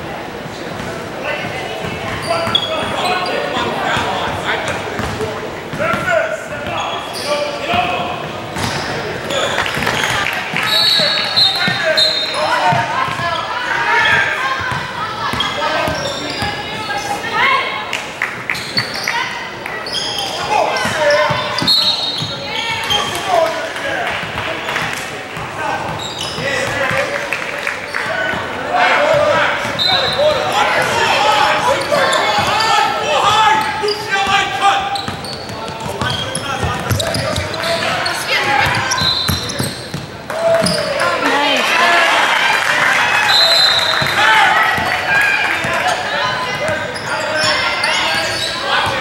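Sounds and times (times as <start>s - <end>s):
people talking in a gym: 0.0s - 49.0s.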